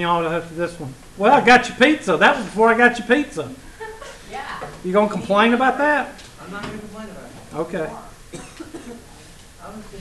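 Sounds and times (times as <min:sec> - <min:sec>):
person coughing: 0:08.3 - 0:09.1.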